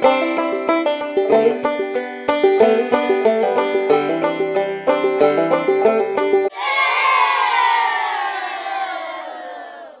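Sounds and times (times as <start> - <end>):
banjo music: 0.0 - 6.5
children cheering: 6.5 - 10.0.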